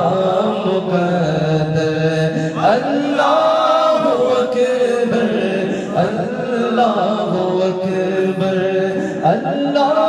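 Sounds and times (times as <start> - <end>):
man singing devotional melody: 0.0 - 10.0.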